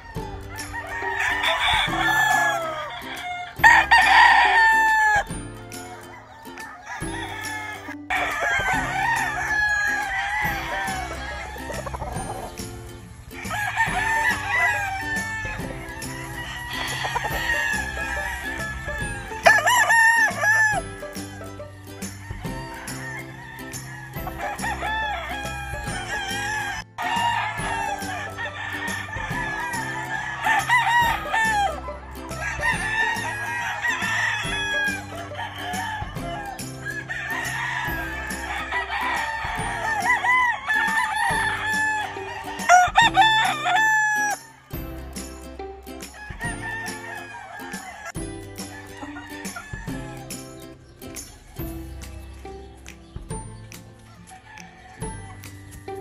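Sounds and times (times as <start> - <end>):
roosters crowing: 0.0 - 52.0, 54.0 - 56.0
background music: 0.0 - 56.0
chickens clucking: 0.0 - 56.0.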